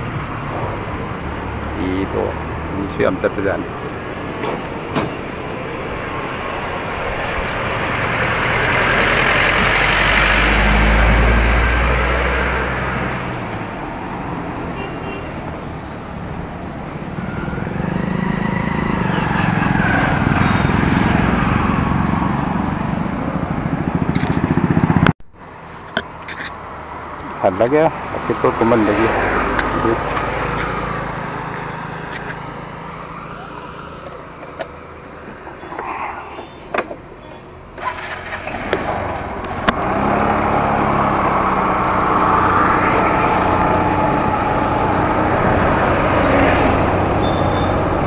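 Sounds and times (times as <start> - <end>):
roadside traffic noise: 0.0 - 48.0
motorcycle engine: 15.8 - 25.1, 37.8 - 48.0.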